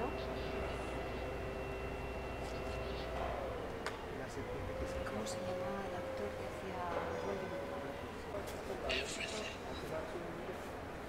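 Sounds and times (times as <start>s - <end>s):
steady hum: 0.0s - 9.8s.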